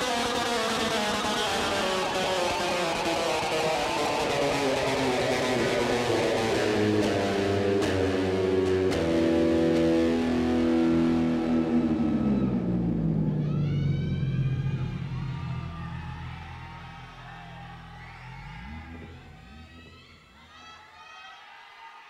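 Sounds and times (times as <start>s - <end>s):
electric guitar chord diving in pitch: 0.6s - 20.6s
high swooping gliding tones: 11.1s - 20.6s.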